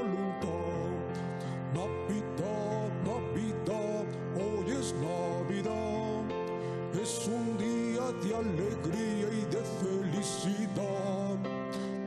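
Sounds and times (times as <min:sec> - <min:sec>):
christmas carol on electronic keyboard: 0:00.0 - 0:12.0.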